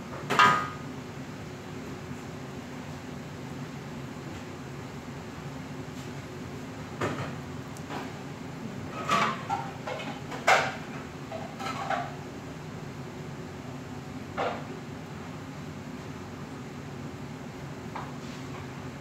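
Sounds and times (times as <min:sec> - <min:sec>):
kitchen knocks and clatters: 0:08.9 - 0:12.2.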